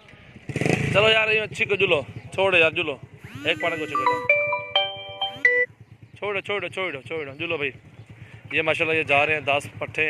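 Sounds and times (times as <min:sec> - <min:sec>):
short electronic melody: 0:03.3 - 0:05.7.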